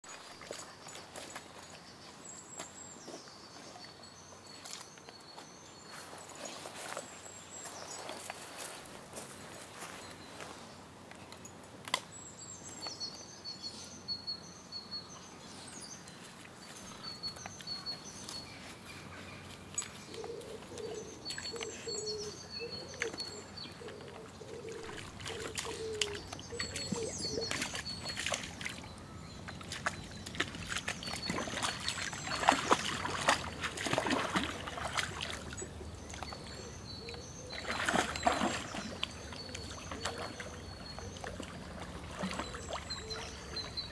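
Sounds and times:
dog splashing in shallow water: 0.0s - 1.5s, 21.2s - 43.9s
small birds chirping: 0.1s - 11.4s, 12.1s - 43.9s
twigs crackling underfoot: 5.9s - 10.6s, 16.7s - 43.1s
pigeon cooing: 20.2s - 27.6s.

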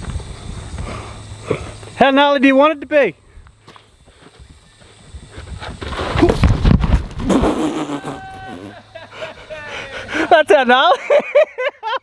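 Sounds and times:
feet sliding on dirt: 3.6s - 7.5s.

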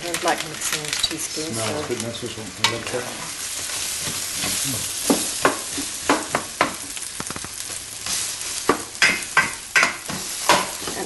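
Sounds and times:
meat and onions frying in a pot: 0.0s - 11.0s
spoon knocking and scraping a pot: 3.7s - 7.4s, 8.6s - 11.0s.

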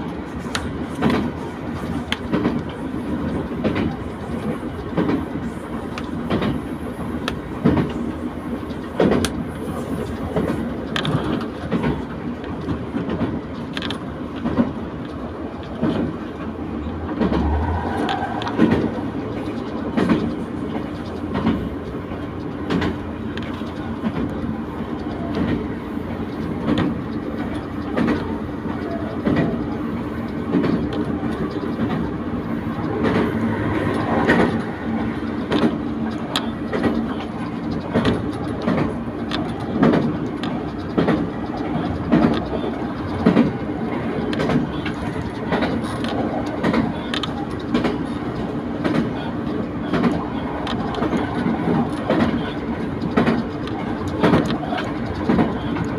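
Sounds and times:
wheel clicks over rail joints: 0.0s - 6.6s, 7.2s - 8.0s, 8.6s - 55.9s
train running rumble: 0.0s - 55.9s.

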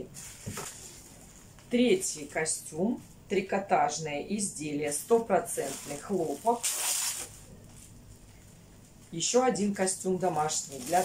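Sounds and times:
plastic package crinkling: 5.5s - 8.0s, 10.2s - 11.0s.

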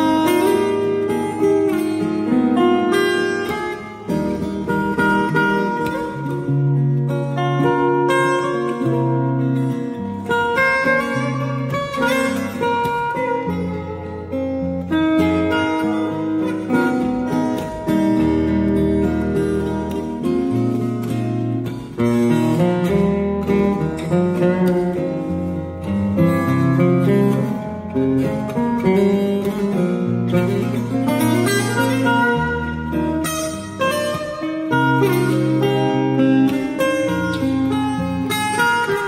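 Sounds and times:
acoustic guitar duet: 0.0s - 39.0s.

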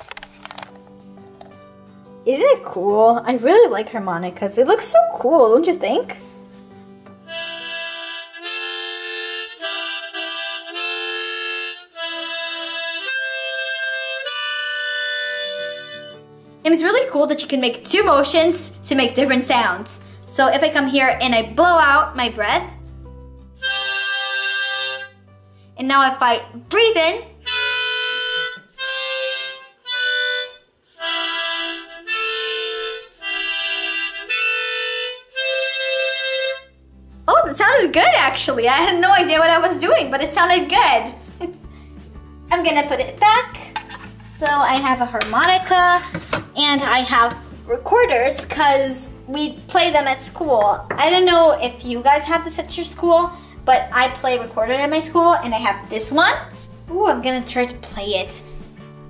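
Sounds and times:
harmonica chords: 7.0s - 17.0s, 23.1s - 25.6s, 26.8s - 57.1s.

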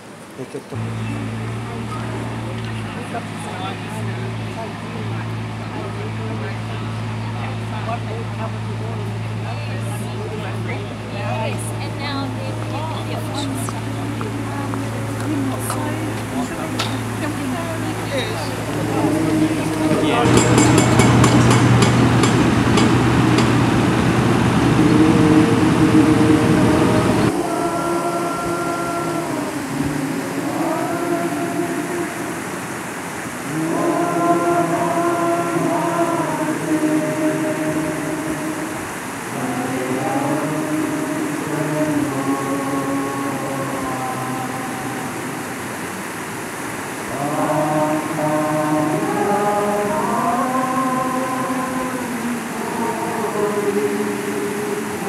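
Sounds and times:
voices singing long notes: 0.0s - 55.0s
loud low rumbling noise: 0.5s - 55.0s.

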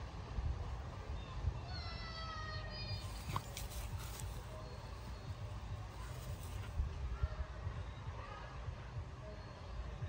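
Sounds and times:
wind rumble: 0.0s - 9.2s.

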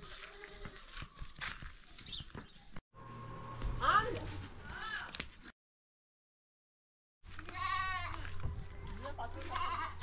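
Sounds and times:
goat bleating: 0.1s - 1.0s, 7.3s - 10.0s.

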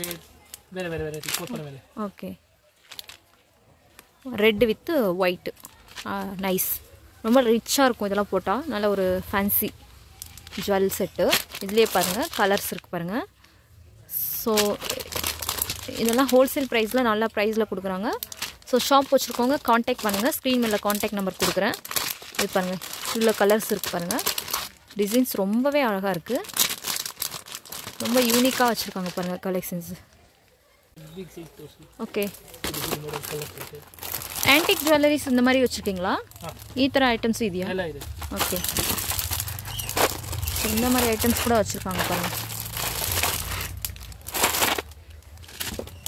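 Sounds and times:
plastic packets crinkling: 0.0s - 1.9s, 2.8s - 4.2s, 5.2s - 13.5s, 14.2s - 30.1s, 32.1s - 46.0s
person speaking: 40.4s - 42.9s
person talking: 40.6s - 42.4s.

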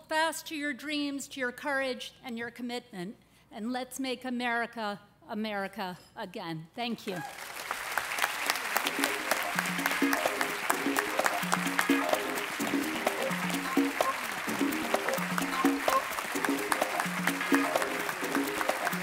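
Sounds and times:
audience applauding: 7.2s - 19.0s
music with repeating low notes: 8.9s - 19.0s.

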